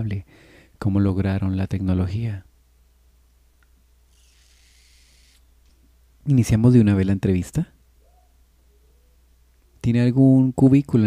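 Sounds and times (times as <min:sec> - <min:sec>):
faint hiss: 0:01.9 - 0:10.7.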